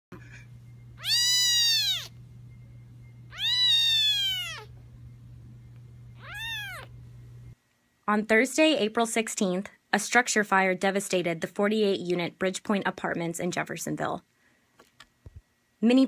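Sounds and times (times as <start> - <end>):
steady low hum: 0.1 - 8.0
kitten mewing: 1.0 - 2.2, 3.3 - 4.8, 6.2 - 6.9.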